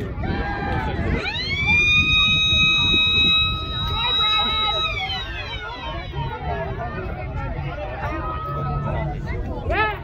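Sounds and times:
siren winding down: 0.7 - 6.6.

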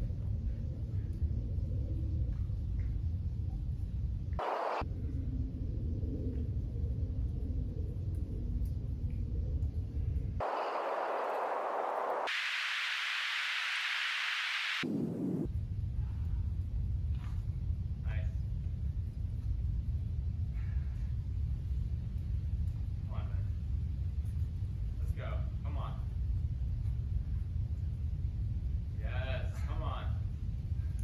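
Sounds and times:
wind rumble on microphone: 0.0 - 12.5, 14.6 - 31.0
plain hiss: 4.4 - 4.8, 10.4 - 15.5.

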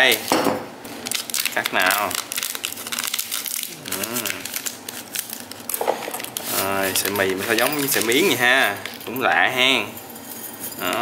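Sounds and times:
plastic packet crinkling: 0.9 - 9.5.

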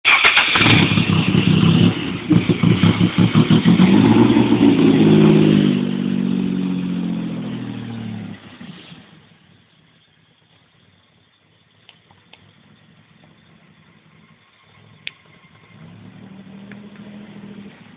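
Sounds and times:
car engine revving: 0.1 - 17.9.

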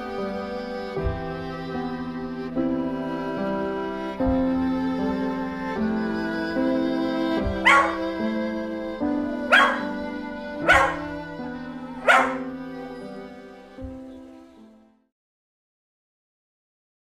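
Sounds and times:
slow held-note music: 0.0 - 15.1
dog barking: 7.6 - 8.2, 9.5 - 10.0, 10.6 - 12.6.

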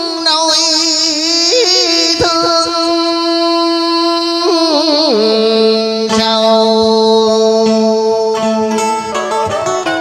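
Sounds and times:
man singing long note with vibrato: 0.0 - 8.8.

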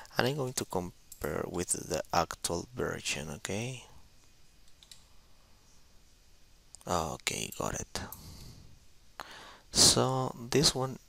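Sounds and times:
computer keyboard clicks: 4.7 - 5.0.

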